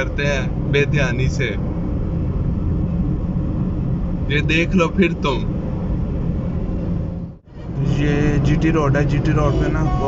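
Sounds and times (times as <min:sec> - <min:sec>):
car engine rumble: 0:00.0 - 0:10.0
tyres on road: 0:00.0 - 0:10.0.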